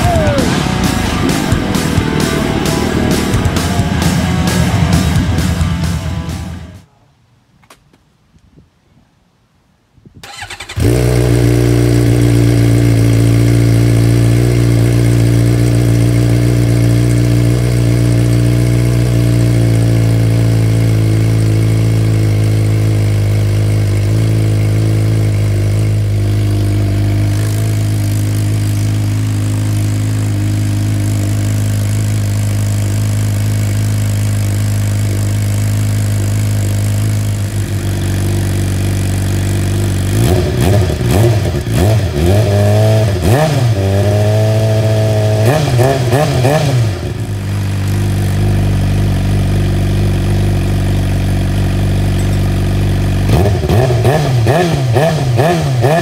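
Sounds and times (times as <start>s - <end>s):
motorcycle engine idling and revving: 0.0s - 6.9s, 10.2s - 56.0s.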